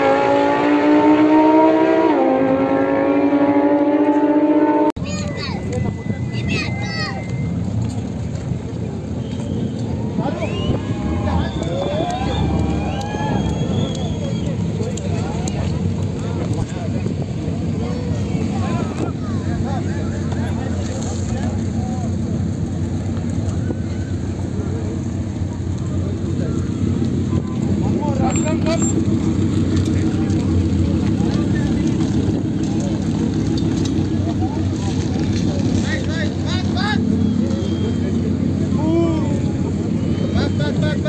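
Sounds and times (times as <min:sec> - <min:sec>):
people's voices: 0:05.0 - 0:41.0.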